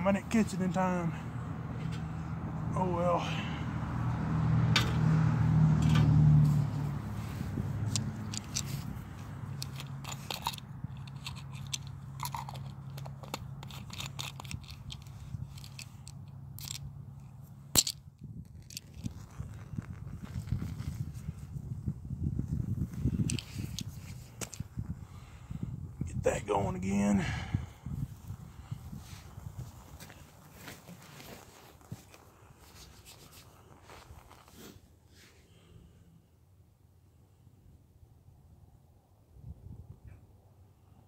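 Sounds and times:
wind rumble on microphone: 0:04.6 - 0:13.0, 0:18.1 - 0:30.4, 0:39.3 - 0:40.4.

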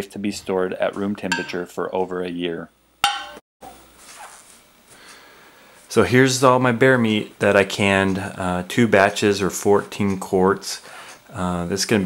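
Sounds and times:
canning lid popping ping: 0:03.0 - 0:03.4
faint room noise: 0:03.6 - 0:12.0.

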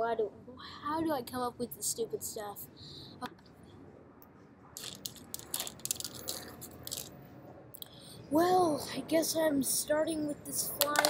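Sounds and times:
plastic toys clicking and scraping: 0:04.8 - 0:07.2, 0:10.8 - 0:11.0.

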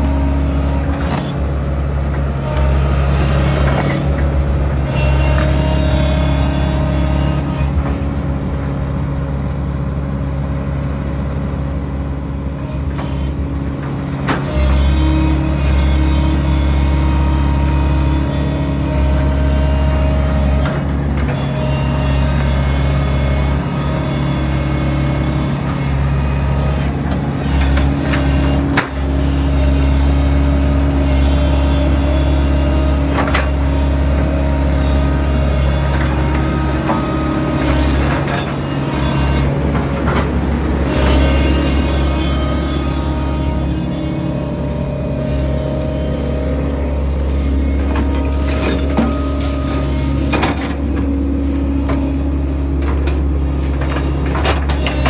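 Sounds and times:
diesel engine running loudly: 0:00.0 - 0:55.0
steady whine: 0:00.0 - 0:55.0.

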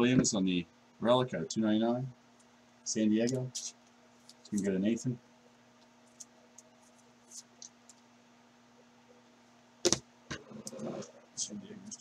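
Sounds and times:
faint steady hum: 0:00.0 - 0:12.0.

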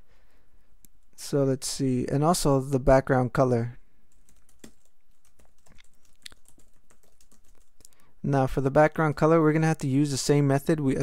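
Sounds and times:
computer keyboard typing: 0:04.1 - 0:08.0.

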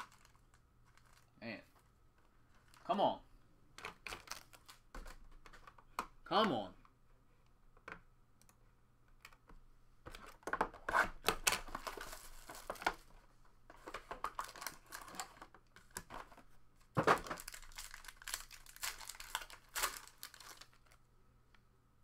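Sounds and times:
foil pack tearing and crinkling: 0:00.0 - 0:01.3, 0:04.0 - 0:04.8, 0:14.3 - 0:15.4, 0:17.2 - 0:21.0.

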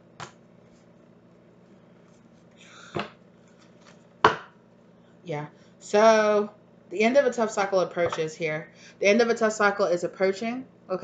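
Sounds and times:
card deck knocking on table: 0:04.2 - 0:04.6.

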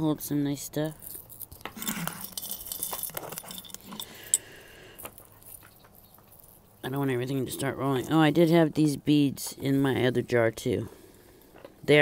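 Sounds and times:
jewelry jangling and clinking: 0:00.8 - 0:06.9.

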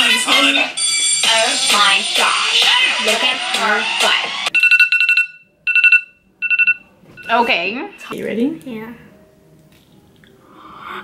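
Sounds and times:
timer alarm high-pitched beeps: 0:04.5 - 0:08.1.

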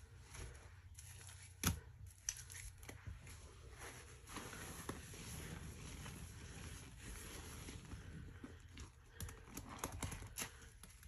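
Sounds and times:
sponge squelching in foam: 0:03.3 - 0:08.4.

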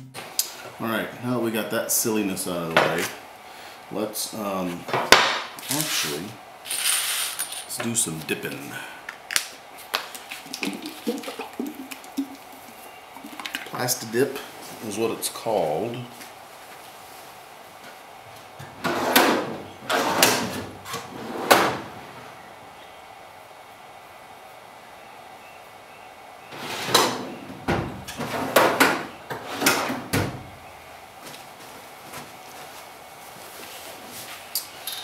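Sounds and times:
sliding scrapes and knocks: 0:18.8 - 0:21.8.

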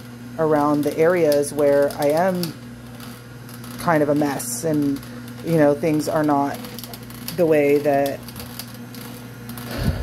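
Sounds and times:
juicer motor hum: 0:00.0 - 0:10.0.

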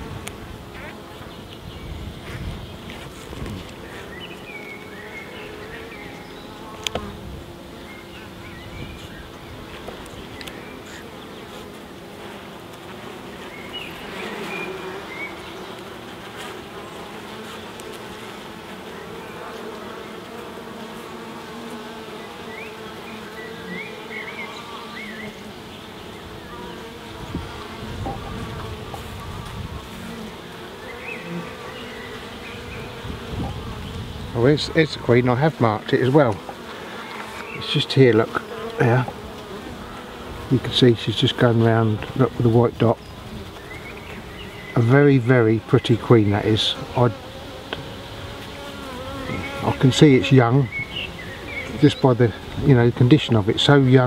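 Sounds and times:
honeybees humming: 0:00.0 - 0:54.0.

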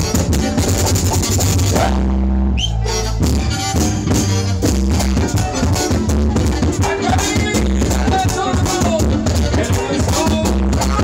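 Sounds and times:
drums and cymbals: 0:00.0 - 0:02.0, 0:03.2 - 0:11.0
live band playing: 0:00.0 - 0:11.0.

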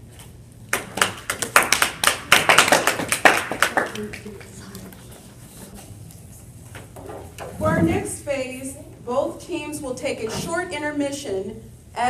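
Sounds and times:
audience clapping: 0:00.7 - 0:04.7.

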